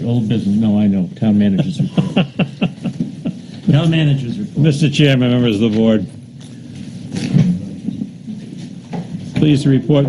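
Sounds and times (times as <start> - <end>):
meeting room background noise: 0.0 - 10.0.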